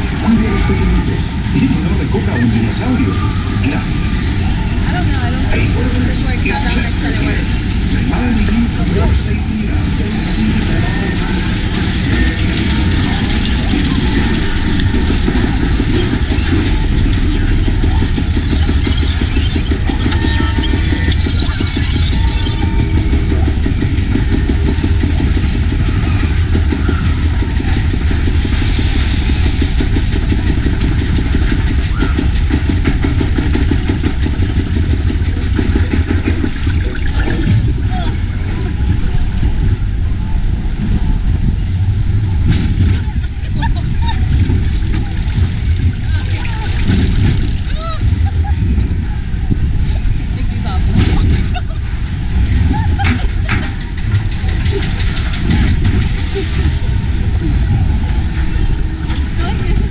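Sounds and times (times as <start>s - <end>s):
low mechanical rumble: 0.0s - 59.9s.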